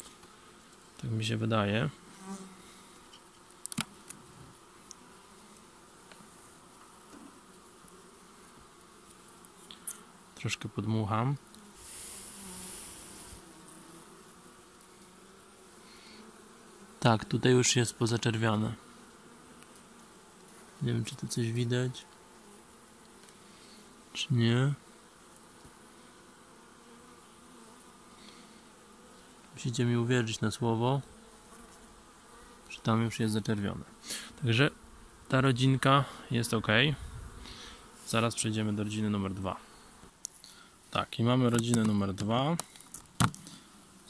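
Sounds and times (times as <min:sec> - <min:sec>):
bees buzzing: 0:00.0 - 0:44.0
honeybees humming: 0:00.0 - 0:44.0.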